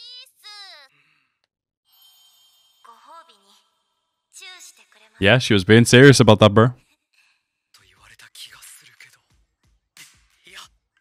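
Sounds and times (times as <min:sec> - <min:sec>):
person speaking: 0:05.2 - 0:06.8.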